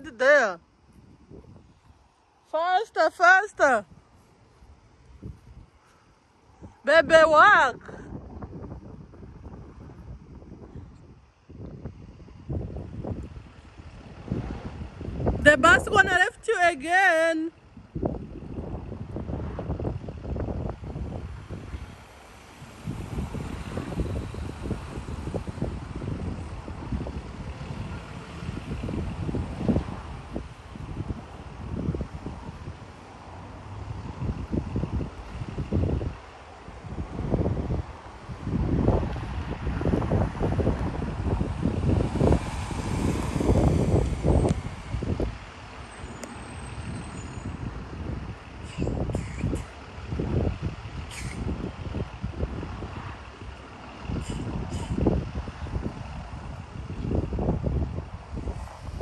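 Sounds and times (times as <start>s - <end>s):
wind buffeting microphone: 0.0s - 2.2s, 3.6s - 59.0s
bus engine running: 0.0s - 59.0s
air brakes hissing: 48.6s - 49.8s, 51.1s - 51.5s, 54.2s - 55.1s.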